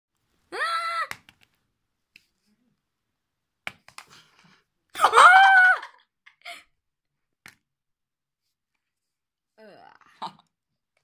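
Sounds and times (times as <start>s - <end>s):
child crying out: 0.5s - 1.1s.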